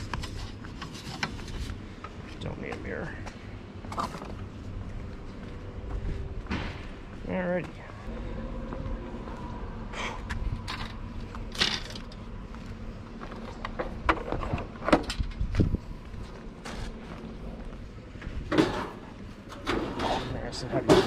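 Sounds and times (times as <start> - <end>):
low rumble: 3.6 - 18.5.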